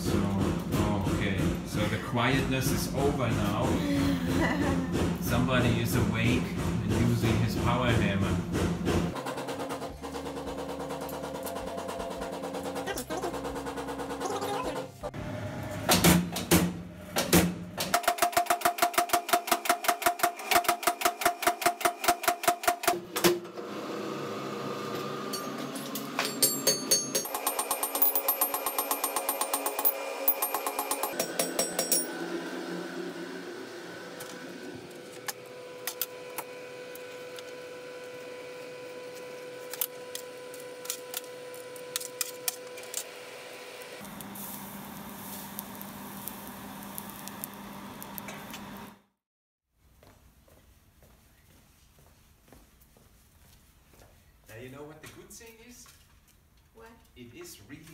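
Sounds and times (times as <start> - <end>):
power hammer striking metal: 25.2 - 32.4.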